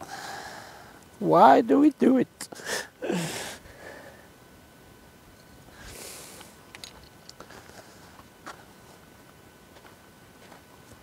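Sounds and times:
breathy rush of noise: 0:00.0 - 0:01.1, 0:05.4 - 0:06.7
footsteps on frosty grass: 0:07.4 - 0:11.0.

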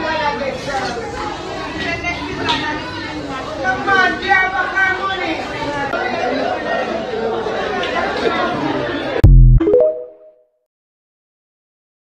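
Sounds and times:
indistinct crowd chatter: 0:00.0 - 0:09.2.

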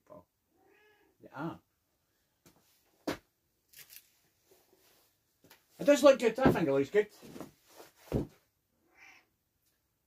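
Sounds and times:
cat mewing: 0:00.6 - 0:01.1, 0:08.8 - 0:09.3.

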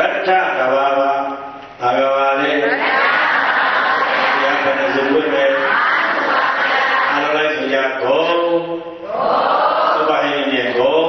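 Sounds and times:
man chanting into a microphone: 0:04.3 - 0:05.8, 0:07.1 - 0:09.0, 0:09.9 - 0:11.0.

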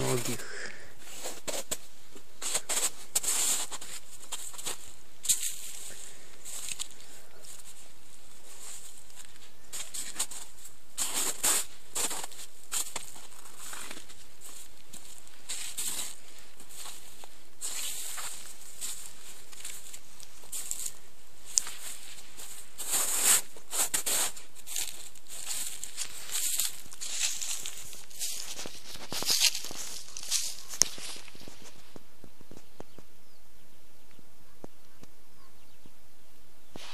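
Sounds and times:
footsteps crunching on snow and grass: 0:00.0 - 0:33.1
background hiss: 0:00.0 - 0:36.9.

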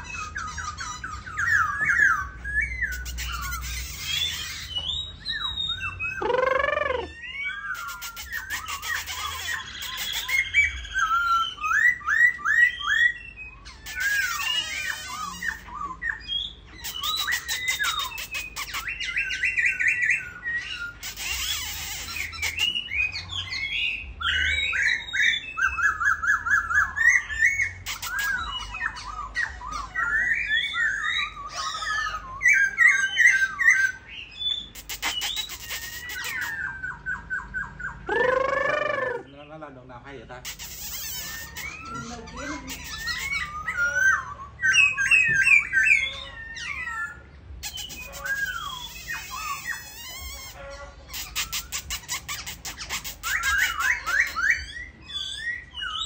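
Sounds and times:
bird singing whistles and trills: 0:00.0 - 0:56.0
harsh rattling bird calls: 0:00.0 - 0:56.0.

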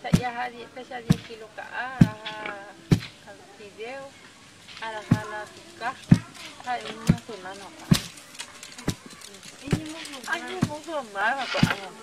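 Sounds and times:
pestle pounding in a mortar: 0:05.1 - 0:05.4.

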